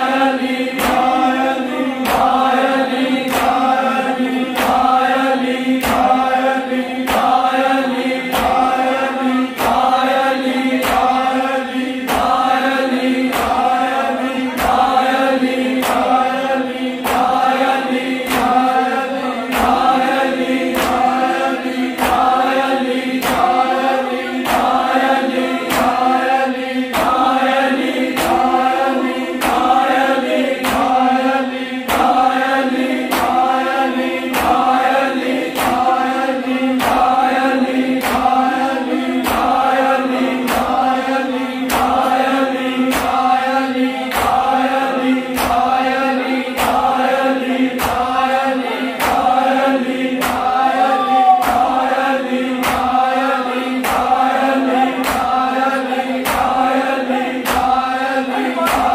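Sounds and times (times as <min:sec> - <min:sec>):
crowd of men chanting lament: 0:00.0 - 0:58.9
hand slaps on bare chests: 0:00.7 - 0:01.4, 0:02.0 - 0:03.8, 0:04.5 - 0:05.2, 0:05.8 - 0:36.2, 0:36.8 - 0:39.8, 0:40.4 - 0:49.6, 0:50.2 - 0:52.0, 0:52.6 - 0:57.9, 0:58.6 - 0:58.9.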